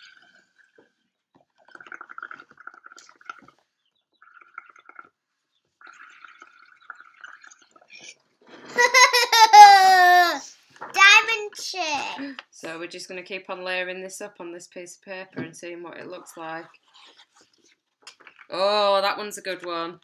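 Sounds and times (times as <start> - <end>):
air bubbling through straw: 1.5 - 3.6, 4.2 - 5.1, 5.8 - 8.7.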